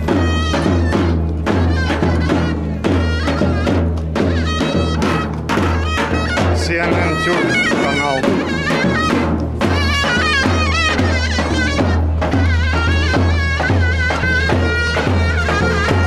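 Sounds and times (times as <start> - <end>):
bass drum beat: 0.0 - 16.0
shrill reedy shawm melody: 0.0 - 16.0.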